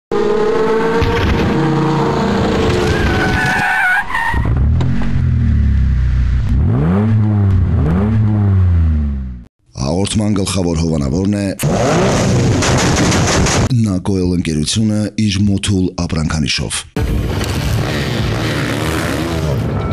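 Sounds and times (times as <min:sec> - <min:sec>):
car engine revving: 0:00.1 - 0:03.3, 0:04.4 - 0:09.5, 0:11.6 - 0:13.6, 0:17.2 - 0:19.8.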